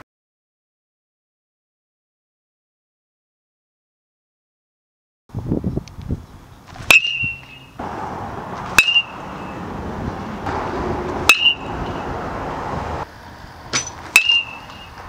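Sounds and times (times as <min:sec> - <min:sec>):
metal bat pinging balls: 0:06.9 - 0:07.7, 0:08.6 - 0:09.6, 0:11.2 - 0:12.0, 0:13.7 - 0:15.0.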